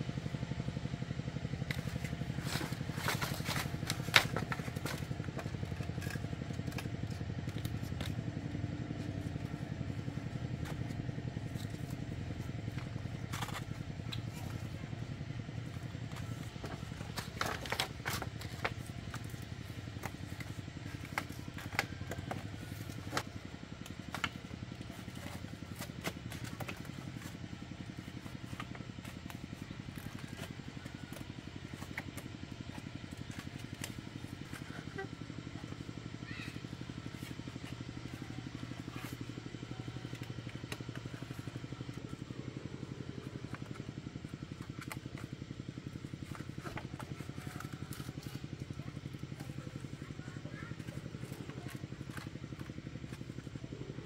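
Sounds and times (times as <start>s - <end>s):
bamboo slats clicking and knocking: 1.3s - 42.3s, 50.7s - 53.7s.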